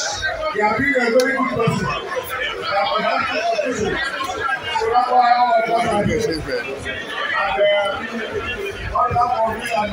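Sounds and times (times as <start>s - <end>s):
man talking into a microphone: 0.0s - 9.9s.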